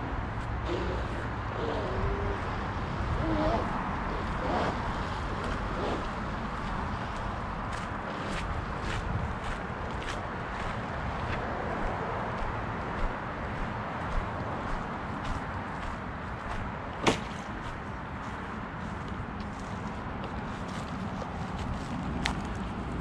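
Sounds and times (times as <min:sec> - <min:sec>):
steady outdoor rush: 0:00.0 - 0:23.0
footsteps on dry grass: 0:04.2 - 0:23.0.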